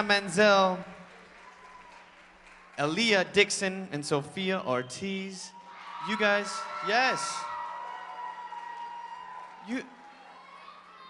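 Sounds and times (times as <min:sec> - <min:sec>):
audience applause and cheering: 0:00.0 - 0:03.7, 0:05.4 - 0:11.0
person speaking into microphone: 0:02.8 - 0:07.4.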